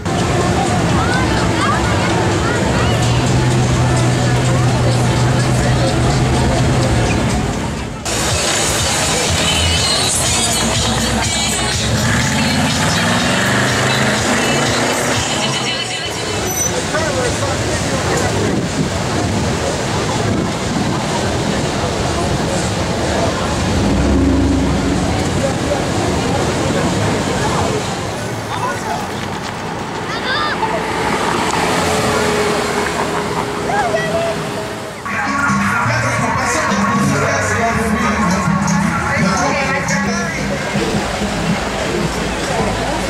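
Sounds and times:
street noise hiss: 0:00.0 - 0:43.0
car engine pulling away: 0:10.3 - 0:15.7, 0:21.0 - 0:35.0
car engine driving past: 0:23.1 - 0:27.0.

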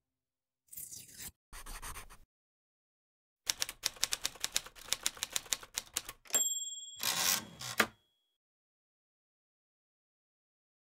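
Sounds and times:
typewriter keys clacking: 0:03.5 - 0:06.4, 0:07.0 - 0:08.0
typewriter carriage return clunk: 0:06.3 - 0:08.0
typewriter bell ding: 0:06.3 - 0:08.1.

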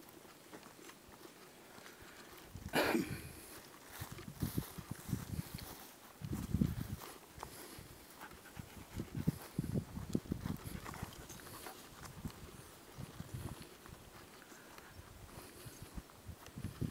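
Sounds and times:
footsteps through heather: 0:00.0 - 0:16.9.

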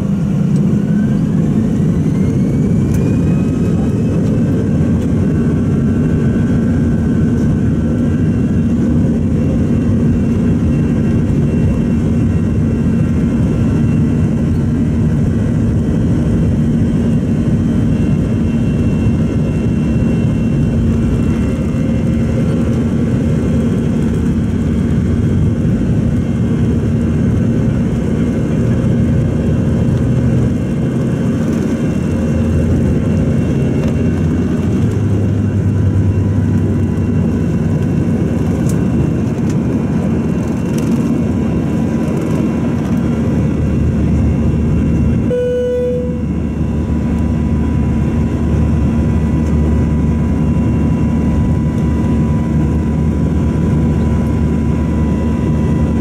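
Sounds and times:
faint engine whine: 0:00.0 - 0:56.0
jet engines droning: 0:00.0 - 0:56.0.

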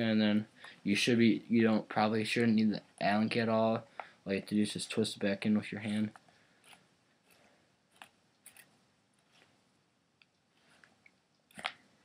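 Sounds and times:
faint clicks and scrapes: 0:05.8 - 0:09.6.

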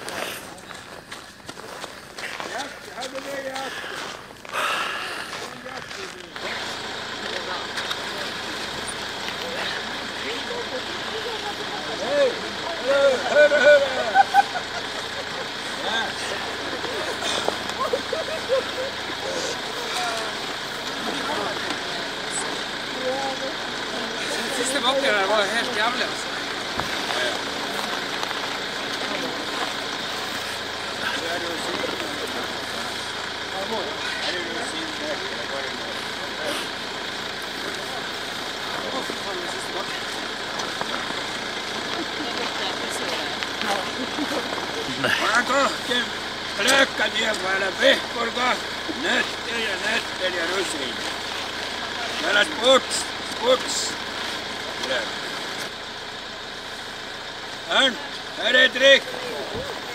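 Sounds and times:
indistinct voices talking: 0:00.0 - 0:59.9
steady background noise: 0:00.0 - 0:59.9.

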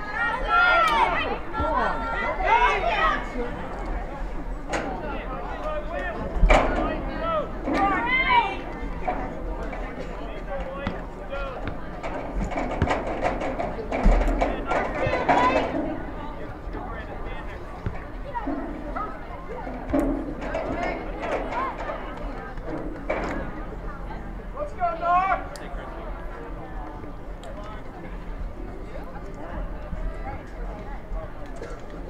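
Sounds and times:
spectators and players calling out: 0:00.0 - 0:27.4.

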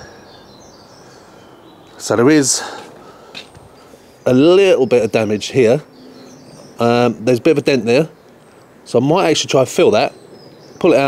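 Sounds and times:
faint bird chirps: 0:00.0 - 0:09.0
steady low hiss: 0:00.0 - 0:11.0.

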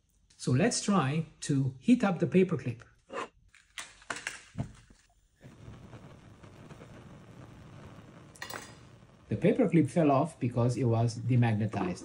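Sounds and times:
gas burner flame hissing: 0:05.4 - 0:11.7.

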